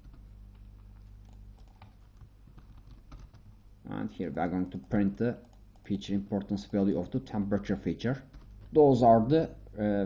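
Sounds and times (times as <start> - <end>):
keyboard typing: 0.0 - 3.6, 4.6 - 7.0, 8.2 - 9.0
low electrical hum: 0.0 - 10.0.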